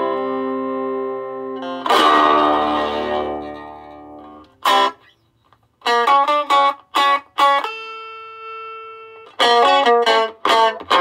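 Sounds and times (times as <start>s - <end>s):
electric guitar chords ringing: 0.0s - 5.2s, 5.8s - 11.0s.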